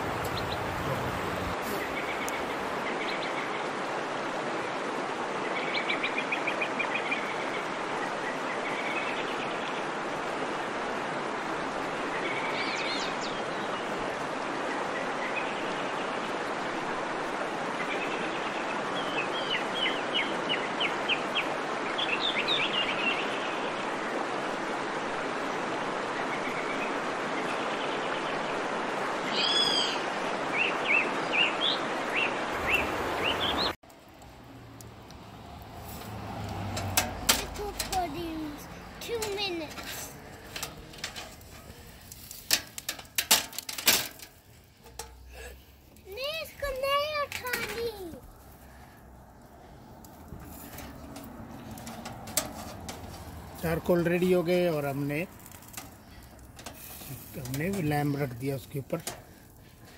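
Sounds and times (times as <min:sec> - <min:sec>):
birds chirping: 0:00.0 - 0:03.8, 0:12.0 - 0:14.0, 0:17.7 - 0:24.2, 0:26.0 - 0:33.8, 0:37.1 - 0:42.2
faint voices: 0:00.2 - 0:02.0
wood fire flames rushing: 0:32.5 - 0:59.9.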